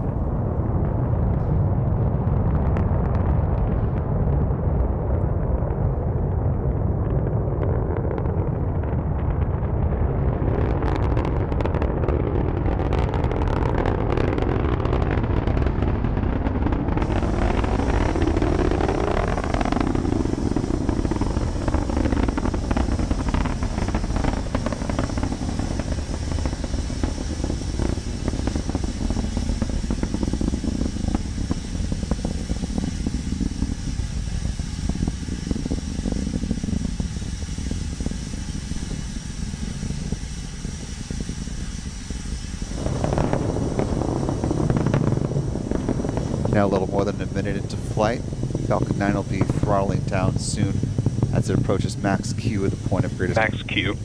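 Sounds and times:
rocket engines roaring: 0.0s - 54.0s.

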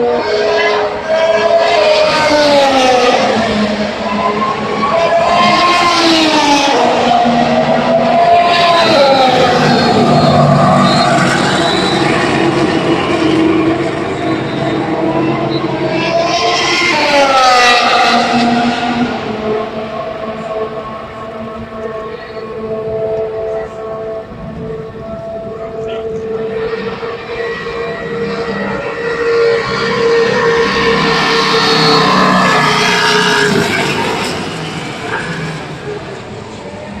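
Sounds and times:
race car passing: 0.0s - 37.0s
race car engine steady note: 17.8s - 37.0s.

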